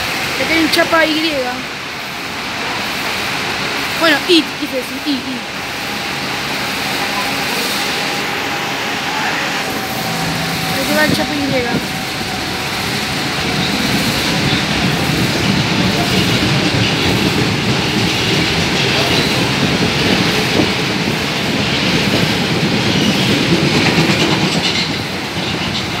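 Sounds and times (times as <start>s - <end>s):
subway train departing: 0.0s - 26.0s.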